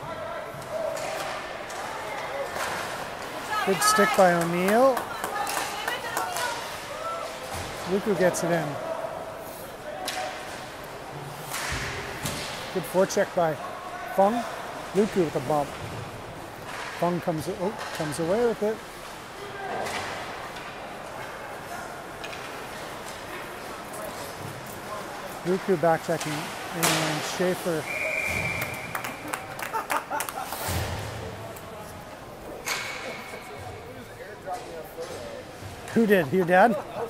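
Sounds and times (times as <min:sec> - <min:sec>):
sticks and puck clacking: 0:00.6 - 0:08.0, 0:22.2 - 0:27.8.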